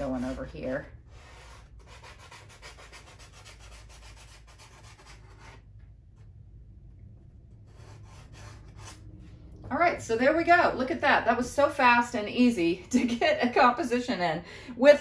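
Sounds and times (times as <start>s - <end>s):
pencil scratching on paper: 0.0s - 5.6s, 7.7s - 9.0s.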